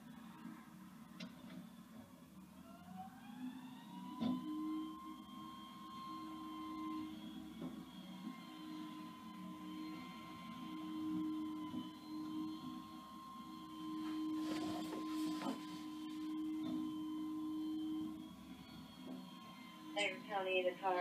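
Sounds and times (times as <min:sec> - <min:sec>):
hydraulic packer whine: 0:02.6 - 0:21.0.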